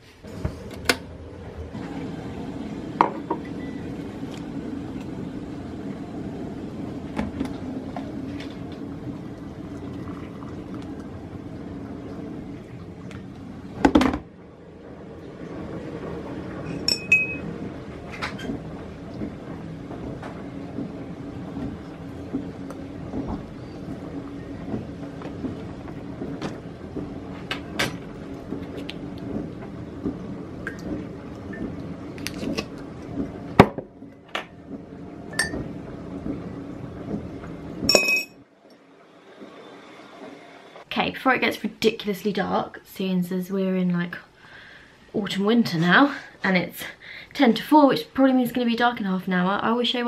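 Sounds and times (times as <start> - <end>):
ceramic mug clinking: 37.9 - 38.4.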